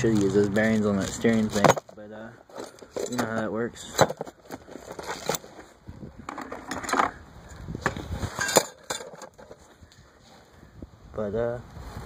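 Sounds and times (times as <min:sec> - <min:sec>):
metal parts clinking in a box: 0:08.3 - 0:09.5.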